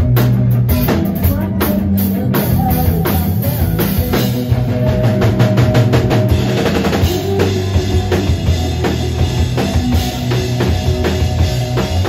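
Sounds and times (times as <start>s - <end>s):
drum kit beat: 0.0s - 12.0s
electric bass: 0.0s - 12.0s
electric guitar: 0.0s - 12.0s.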